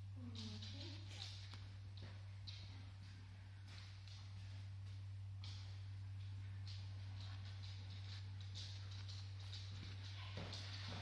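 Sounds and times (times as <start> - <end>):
steady low hum: 0.0 - 11.0
footsteps on hard floor: 1.2 - 11.0.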